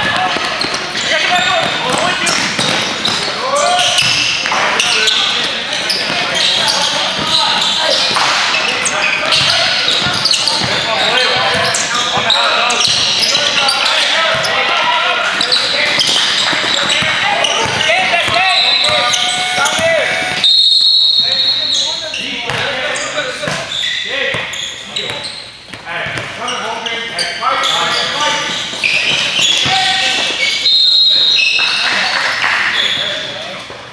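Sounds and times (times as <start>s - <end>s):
people calling out: 0.0s - 22.2s
basketball bouncing on hardwood: 16.0s - 19.0s
referee's whistle: 18.3s - 22.1s, 30.4s - 31.8s.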